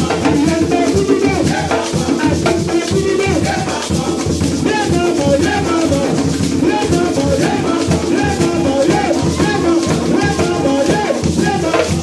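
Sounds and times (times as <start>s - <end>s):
barrel hand drums: 0.0s - 12.0s
group of voices singing: 0.0s - 12.0s
rattling shaker: 0.0s - 12.0s.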